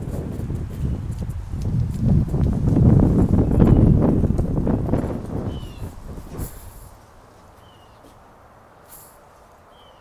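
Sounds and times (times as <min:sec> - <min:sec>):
low rumbling noise: 0:00.0 - 0:07.4
footsteps on porch: 0:00.0 - 0:09.6.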